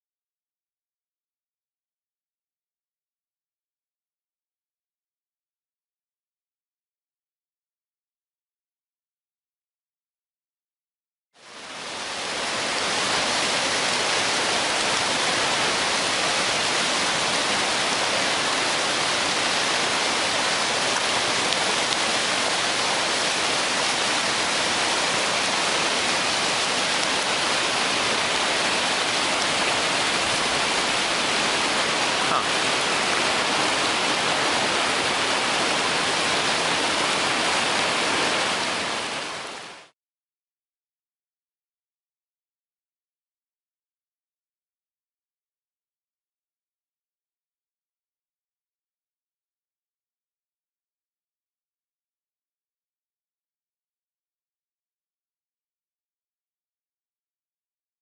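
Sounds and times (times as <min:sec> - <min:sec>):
whitewater rapids rushing: 0:11.5 - 0:39.8.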